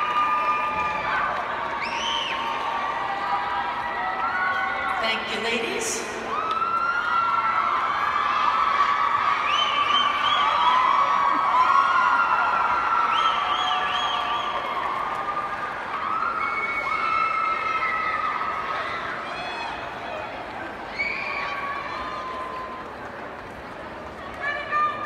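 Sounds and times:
crowd cheering: 0:00.0 - 0:05.4, 0:06.0 - 0:25.0
high-pitched shouts and whoops: 0:06.3 - 0:20.0.

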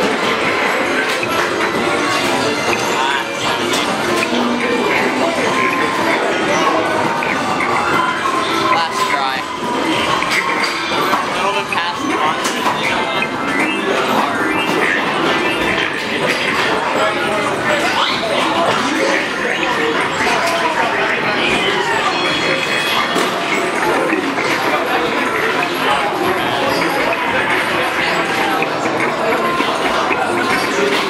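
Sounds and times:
crowd noise: 0:00.0 - 0:31.0
electronic arcade game sounds: 0:00.0 - 0:31.0
indistinct voices: 0:00.0 - 0:31.0.

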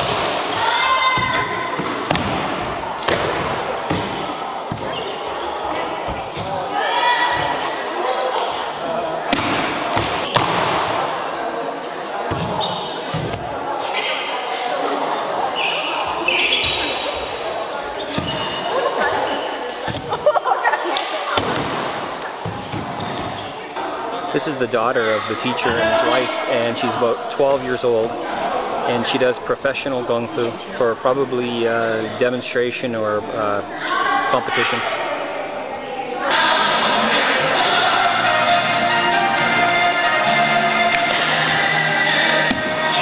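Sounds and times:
voices in background: 0:00.0 - 0:38.5.

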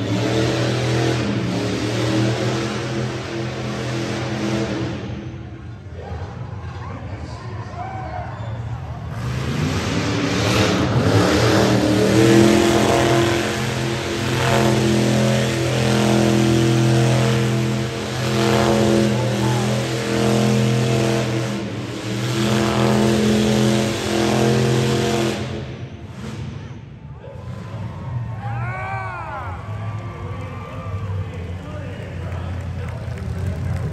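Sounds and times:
car engine revving high: 0:00.0 - 0:05.5, 0:09.1 - 0:26.8.

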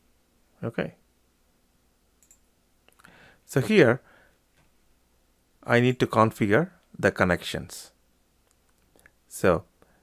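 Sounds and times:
computer mouse clicks: 0:02.2 - 0:03.1.

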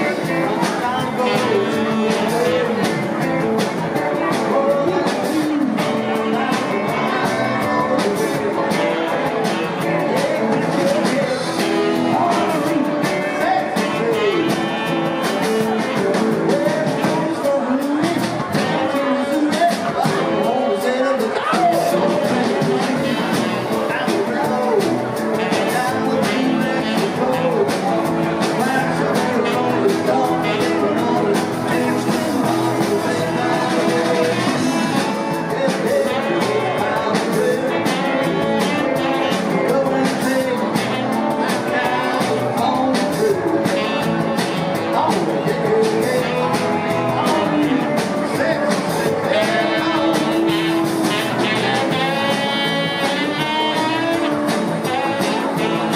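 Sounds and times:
drum kit with cymbals: 0:00.0 - 0:55.9
rock band playing: 0:00.0 - 0:55.9.

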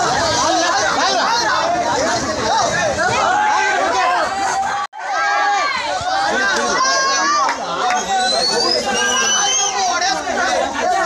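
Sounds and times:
crowd of men talking: 0:00.0 - 0:11.0.

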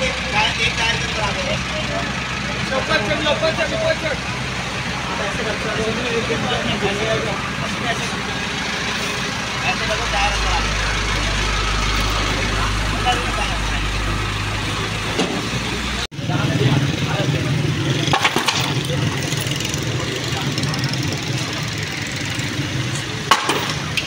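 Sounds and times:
truck engine rumbling: 0:00.0 - 0:24.0
voices: 0:00.0 - 0:24.0.

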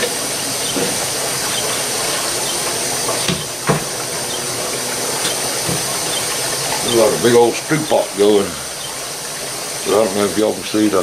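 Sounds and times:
liquid churning and bubbling: 0:00.0 - 0:11.0.

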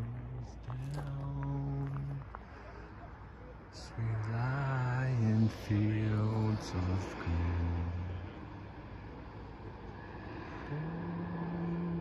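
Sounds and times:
low background noise: 0:00.0 - 0:12.0.

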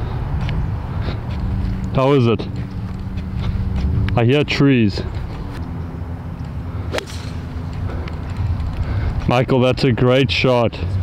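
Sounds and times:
steady low hum: 0:00.0 - 0:10.0
golf club striking ball: 0:06.9 - 0:07.8.

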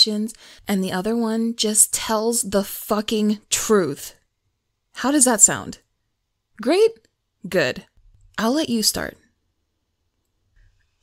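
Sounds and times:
woman speaking: 0:00.0 - 0:04.2, 0:05.0 - 0:05.9, 0:06.5 - 0:09.3.

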